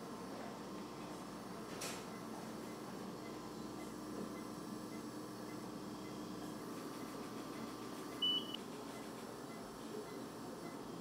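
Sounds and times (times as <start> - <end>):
room equipment hum: 0.0 - 11.0
patient monitor beep: 2.1 - 6.3, 7.0 - 10.9.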